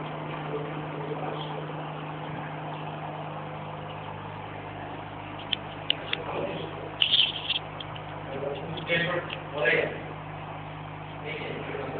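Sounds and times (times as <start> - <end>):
low hum: 0.0 - 11.9.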